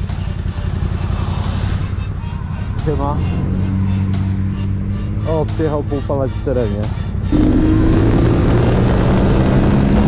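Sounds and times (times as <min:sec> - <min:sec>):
low engine hum: 0:00.0 - 0:10.0
car driving past: 0:07.3 - 0:10.0.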